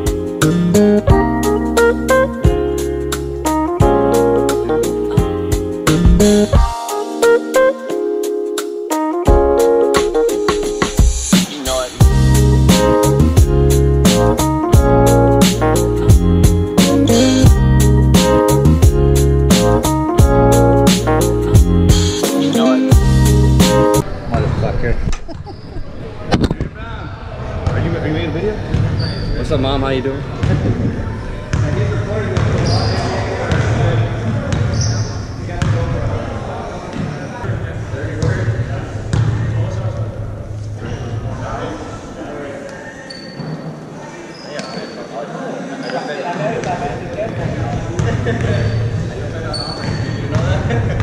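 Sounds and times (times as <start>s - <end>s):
high squeak: 29.0s - 29.4s, 42.8s - 45.2s, 48.6s - 50.4s.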